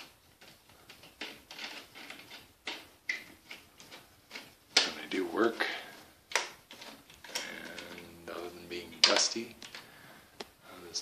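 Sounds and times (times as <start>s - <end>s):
window blind slats clicking: 0.0s - 9.9s
blind tilt mechanism rattling: 0.0s - 10.0s.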